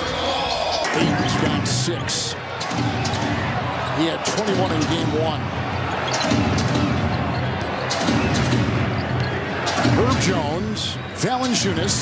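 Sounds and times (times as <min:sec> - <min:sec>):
arena crowd noise: 0:00.0 - 0:12.0
shoes squeaking on court: 0:08.9 - 0:09.4.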